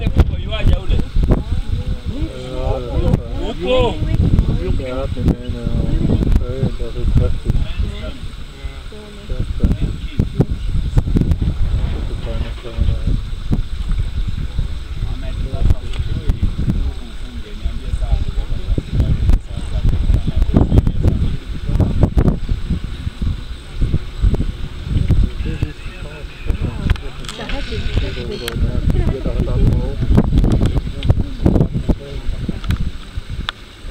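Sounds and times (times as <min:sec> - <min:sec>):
low indistinct voices: 0:00.0 - 0:33.9
wind buffeting microphone: 0:00.0 - 0:33.9.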